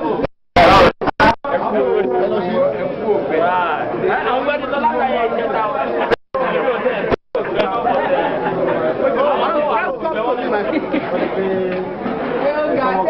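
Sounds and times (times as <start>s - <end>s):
many people talking: 0.0s - 13.0s.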